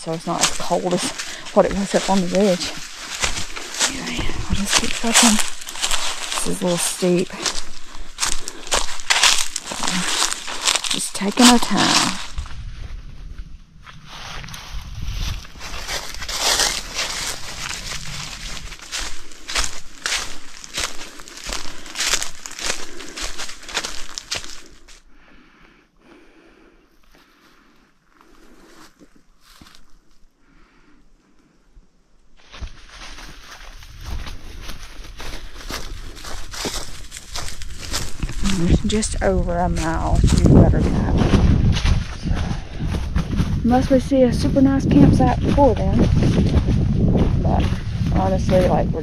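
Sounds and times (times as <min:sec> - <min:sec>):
footsteps on forest trail: 0:00.0 - 0:30.8, 0:32.4 - 0:49.0.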